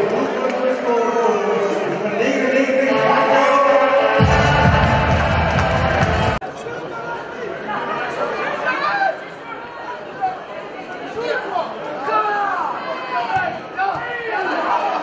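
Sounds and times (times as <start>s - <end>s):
music with heavy bass: 4.2s - 6.4s.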